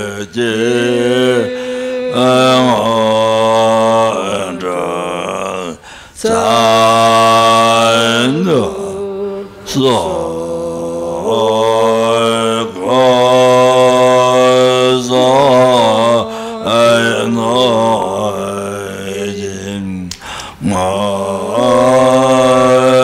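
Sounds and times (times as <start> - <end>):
man chanting in deep voice: 0.0 - 23.0.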